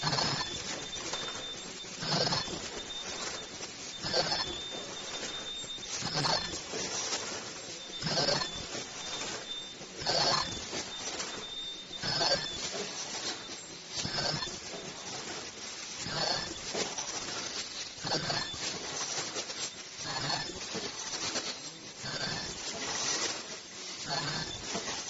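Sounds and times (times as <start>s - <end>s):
faint high whine: 0.0s - 25.0s
machine stroke bursts: 0.0s - 25.0s.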